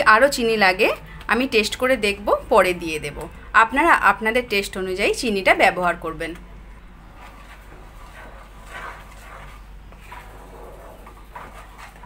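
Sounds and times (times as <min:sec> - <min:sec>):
low steady hum: 0:00.0 - 0:12.0
wooden spatula stirring pulp: 0:07.0 - 0:12.0.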